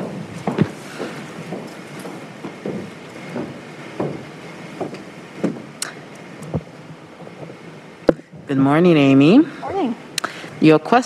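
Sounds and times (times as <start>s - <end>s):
footsteps on hard floor: 0.0s - 5.7s
background hiss: 0.0s - 11.0s.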